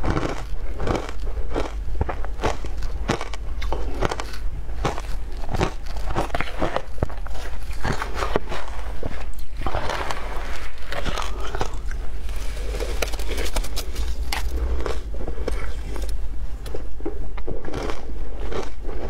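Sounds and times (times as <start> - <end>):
chewing shaved ice: 0.0 - 19.0.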